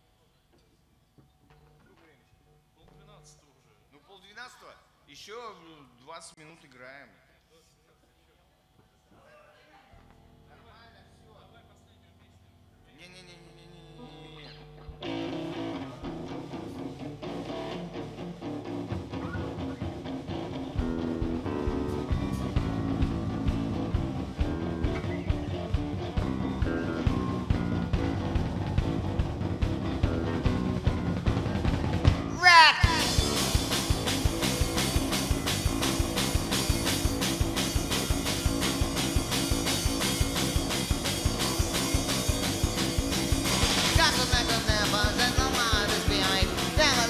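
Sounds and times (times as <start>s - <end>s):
rock band playing: 15.0s - 47.0s.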